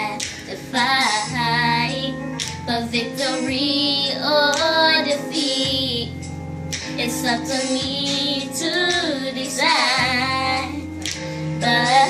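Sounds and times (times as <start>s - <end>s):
girls singing: 0.0s - 6.1s, 7.0s - 12.0s
recorded backing music: 0.0s - 12.0s.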